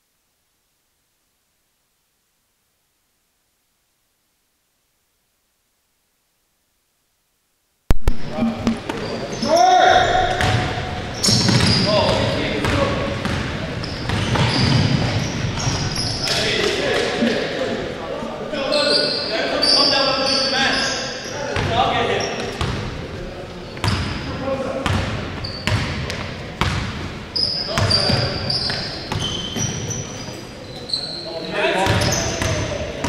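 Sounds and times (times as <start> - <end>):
players calling out: 8.2 - 13.1
sneakers squeaking: 8.2 - 16.7, 18.6 - 22.9, 23.5 - 33.0
basketball bouncing on wooden floor: 10.4 - 13.5.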